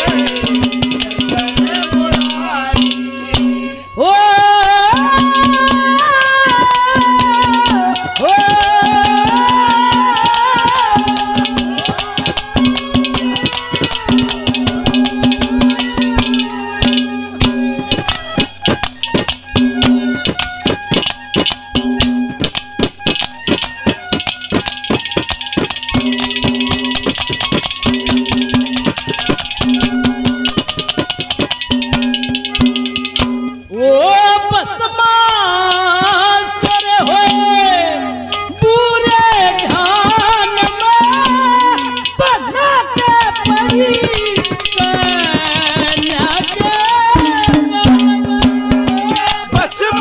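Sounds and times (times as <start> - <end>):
man singing long high note: 0.0 - 13.3
fast hand-drum rhythm: 0.0 - 33.7, 34.4 - 50.0
quick percussion beat: 0.0 - 33.7, 35.3 - 50.0
harmonium tone: 0.0 - 50.0.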